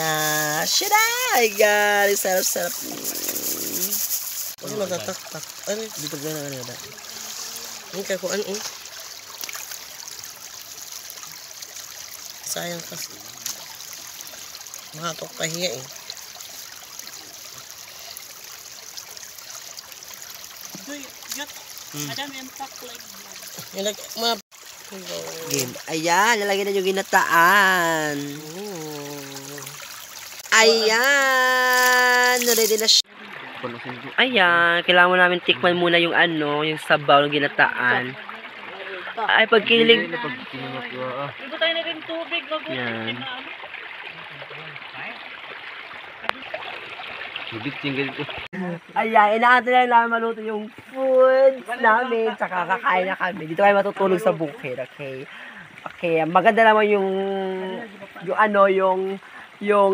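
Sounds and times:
rushing trickling noise: 0:00.0 - 0:33.0
stew bubbling at a boil: 0:00.0 - 0:34.1.

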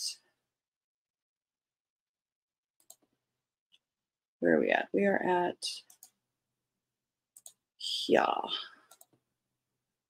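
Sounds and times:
computer mouse clicks: 0:02.8 - 0:03.1, 0:05.8 - 0:06.2, 0:07.4 - 0:07.6, 0:08.8 - 0:09.2.

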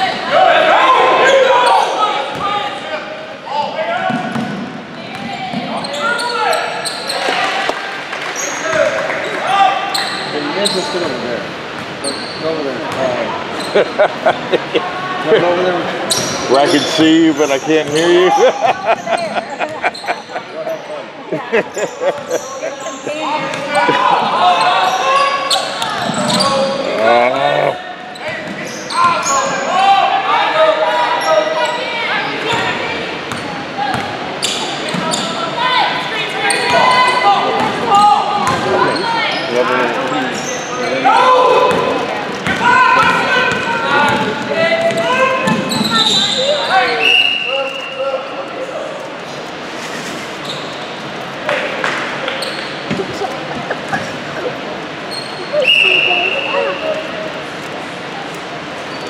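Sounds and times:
voices echoing in gym: 0:00.0 - 0:59.0.

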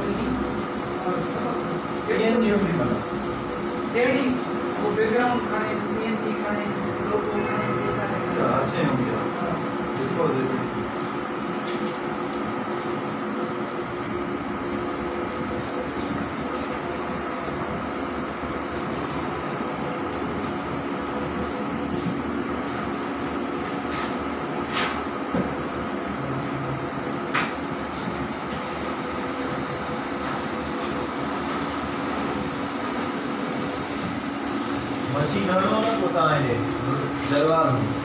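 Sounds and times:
printer mechanical hum: 0:00.0 - 0:38.0.

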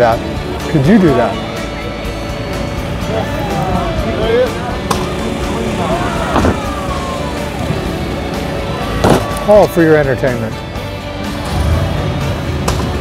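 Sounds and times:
crowd chatter: 0:00.0 - 0:13.0
faint background music: 0:00.0 - 0:13.0.

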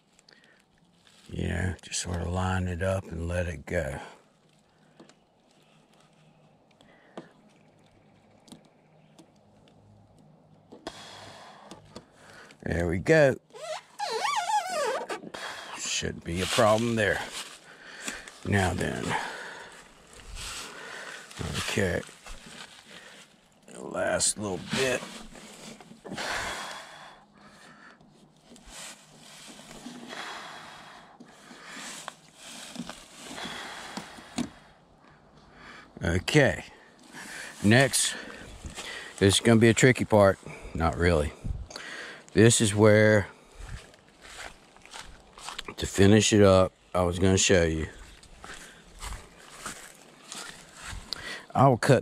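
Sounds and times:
soft rustling: 0:00.0 - 0:02.0, 0:04.2 - 0:10.7, 0:16.2 - 0:26.1, 0:28.0 - 0:30.2, 0:31.2 - 0:35.2, 0:37.0 - 0:41.4, 0:43.5 - 0:46.1, 0:47.8 - 0:51.2
man breathing close to microphone: 0:10.9 - 0:12.6, 0:19.1 - 0:21.4, 0:25.2 - 0:28.0, 0:29.9 - 0:36.0, 0:36.8 - 0:39.2, 0:40.4 - 0:42.3, 0:50.8 - 0:51.5.

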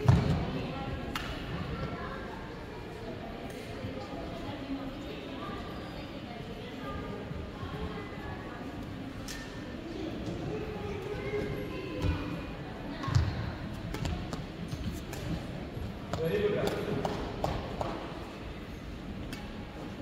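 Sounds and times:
echoing background chatter: 0:00.0 - 0:20.0.

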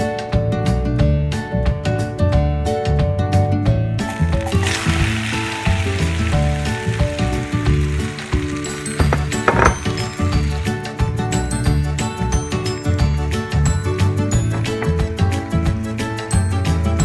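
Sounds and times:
background music: 0:00.0 - 0:17.0
food sizzling in hot oil: 0:04.0 - 0:12.8.

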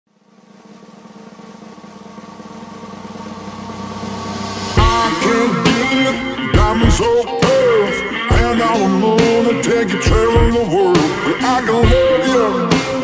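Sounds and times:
steady drone: 0:00.1 - 0:13.0
drums crashing: 0:00.9 - 0:13.0
rock guitar: 0:03.6 - 0:13.0.

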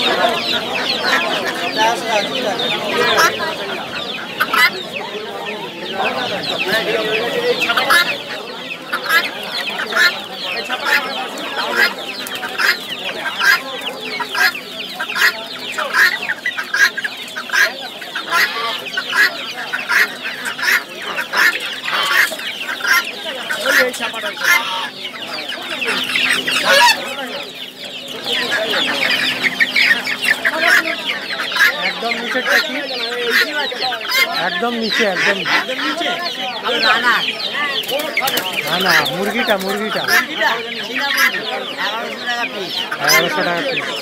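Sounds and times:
chickens and chicks peeping and clucking: 0:00.0 - 0:44.0.

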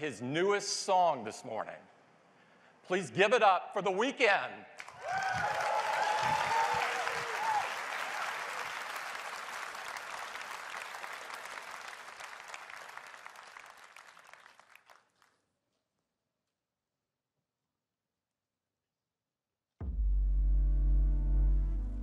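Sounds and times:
large audience applauding: 0:04.8 - 0:15.4
audience cheers: 0:04.9 - 0:10.0.

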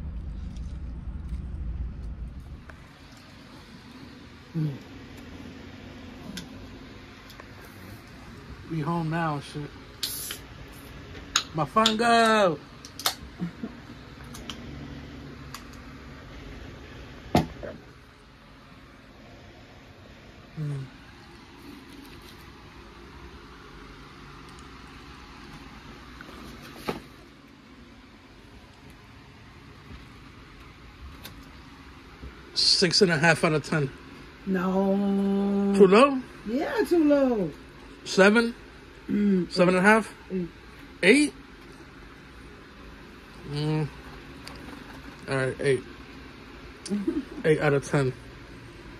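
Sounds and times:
faint low hum: 0:00.0 - 0:48.9
low room noise: 0:00.0 - 0:48.9.

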